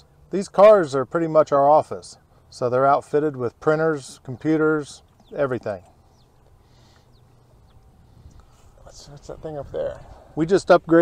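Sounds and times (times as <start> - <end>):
low steady hum: 0.0 - 11.0
faint bird chirps: 4.0 - 8.9.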